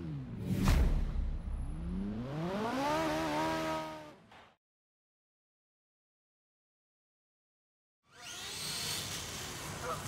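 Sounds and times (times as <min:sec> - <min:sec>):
motor revving up: 0:08.1 - 0:09.9.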